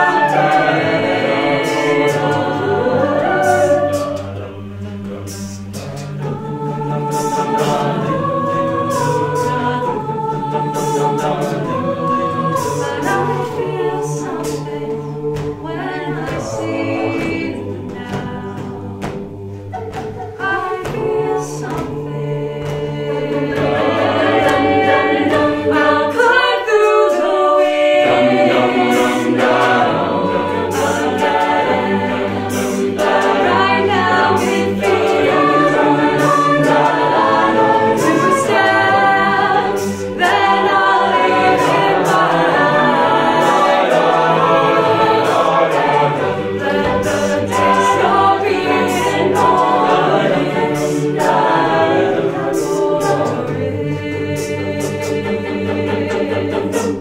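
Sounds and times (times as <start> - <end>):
vocal group singing in harmony: 0.0 - 57.0
percussive ticks: 14.3 - 26.5.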